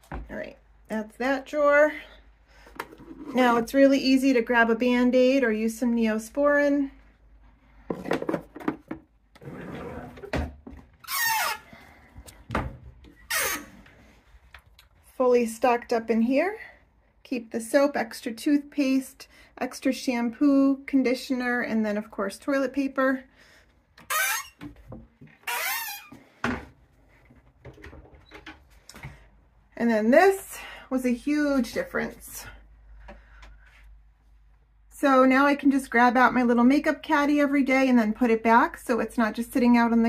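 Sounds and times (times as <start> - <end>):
cabinet door squeaks: 9.4 - 11.7, 13.1 - 13.8, 24.1 - 24.7, 25.4 - 26.2.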